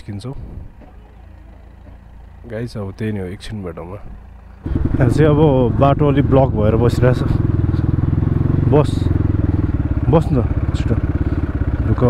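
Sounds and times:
dirt bike engine at low revs: 0:00.4 - 0:12.0.

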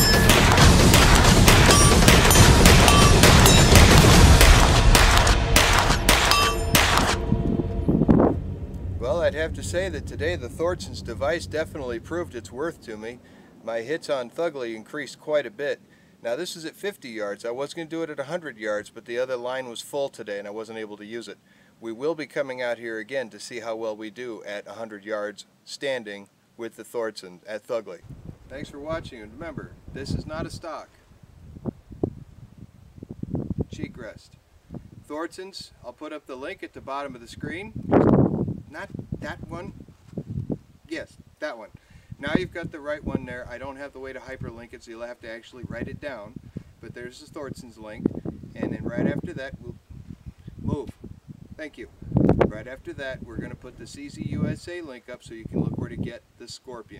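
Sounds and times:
wind rumble on microphone: 0:07.2 - 0:13.0, 0:28.0 - 0:34.0, 0:34.6 - 0:35.1, 0:37.2 - 0:41.4, 0:42.1 - 0:43.6, 0:45.6 - 0:54.6, 0:55.4 - 0:56.1.

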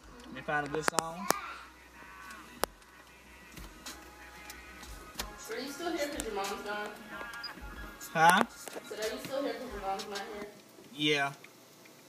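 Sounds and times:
faint bass-heavy car music: 0:00.0 - 0:10.5.

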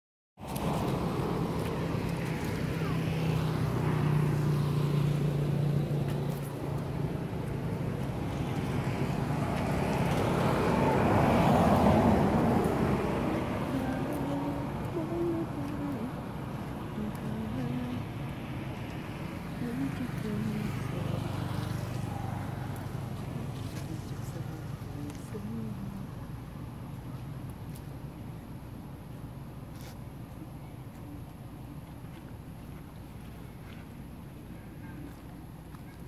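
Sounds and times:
motor vehicle passing: 0:00.4 - 0:26.4.

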